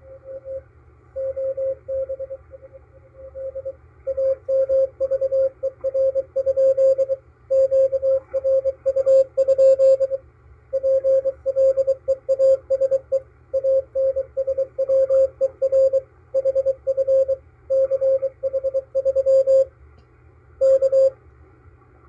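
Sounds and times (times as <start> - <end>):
morse code tone: 0.0 - 19.7, 20.6 - 21.2.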